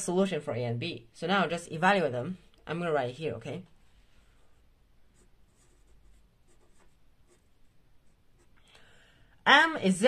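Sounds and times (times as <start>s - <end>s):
marker pen scratching on paper: 5.0s - 8.6s.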